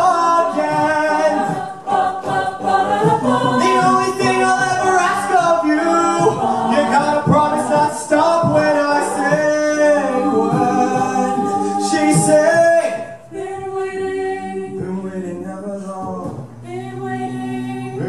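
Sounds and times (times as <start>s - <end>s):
man singing lead: 0.0s - 1.5s, 3.5s - 13.3s
a cappella group singing: 0.0s - 18.0s
vocal percussion beat: 0.0s - 18.0s.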